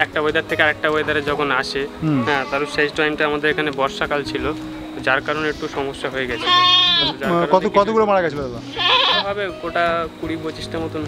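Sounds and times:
goat bleating: 0:02.0 - 0:03.0, 0:05.3 - 0:07.4, 0:08.6 - 0:09.4.

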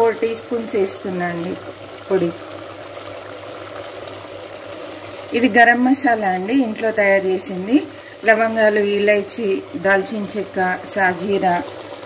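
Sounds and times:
curry simmering sizzle: 0:00.0 - 0:12.0.

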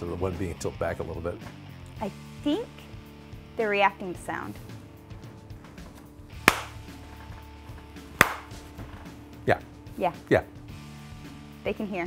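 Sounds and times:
faint background music: 0:00.0 - 0:12.0
sharp hand claps: 0:06.4 - 0:06.9, 0:08.2 - 0:08.6.

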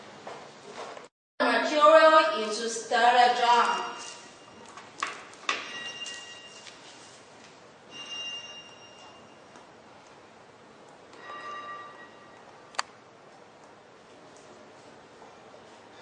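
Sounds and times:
sharp click: 0:12.7 - 0:13.0.

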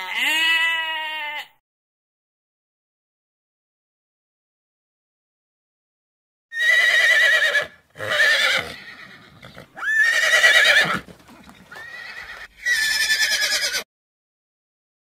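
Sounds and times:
horse whinnying: 0:06.5 - 0:13.9.

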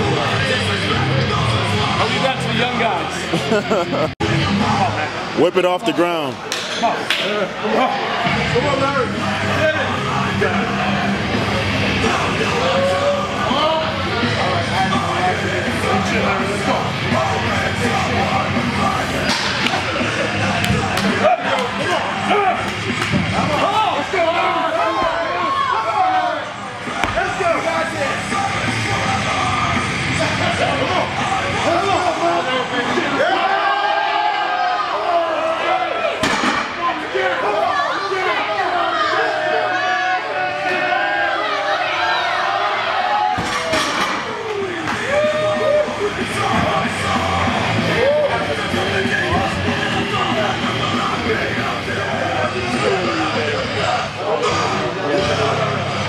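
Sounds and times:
crowd yelling and cheering: 0:00.0 - 0:56.0.

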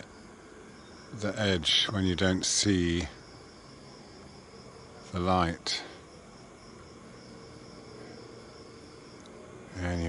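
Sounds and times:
night insects trilling: 0:00.0 - 0:10.0.

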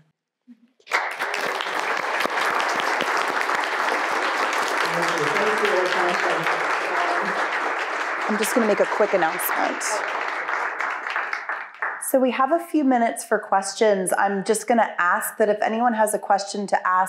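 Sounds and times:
audience applauding: 0:00.8 - 0:12.1.

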